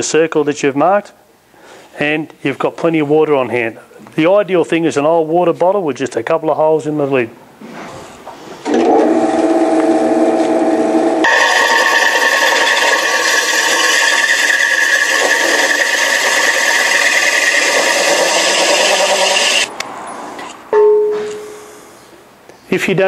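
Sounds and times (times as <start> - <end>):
drill press humming: 8.7 - 19.7
hole saw grinding ceramic: 11.2 - 19.7
brief ringing note: 20.8 - 21.9.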